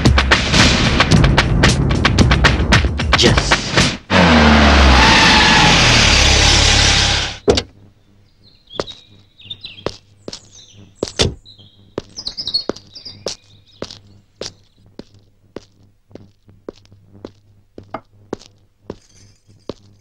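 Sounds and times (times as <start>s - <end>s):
vehicle engine and tyre noise: 4.1s - 7.4s
birds chirping: 7.8s - 15.4s.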